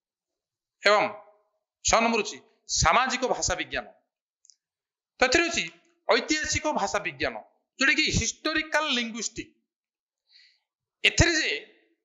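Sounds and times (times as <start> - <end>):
man speaking: 0.8 - 1.3, 1.9 - 4.0, 5.2 - 9.5, 11.0 - 11.7.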